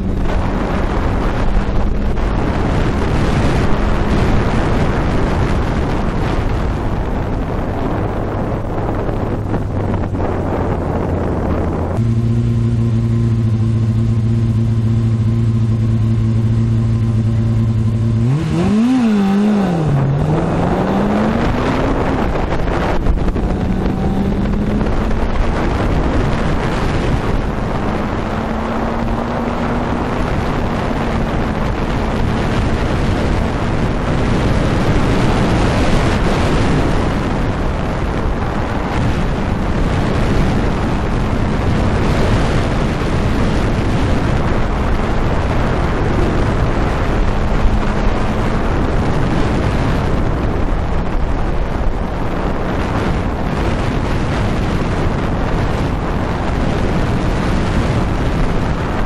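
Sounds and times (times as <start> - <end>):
race car engine revving: 11.8 - 50.2
loud rushing noise: 18.1 - 59.0.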